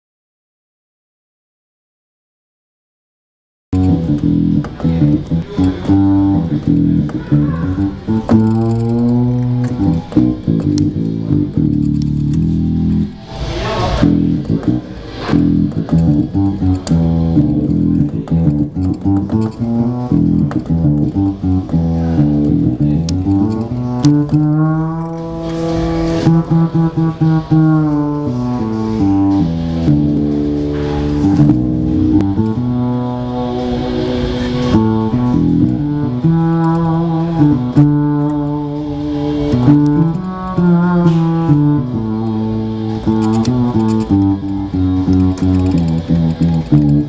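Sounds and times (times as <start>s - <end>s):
plucked-string digital piano melody: 3.8s - 47.0s.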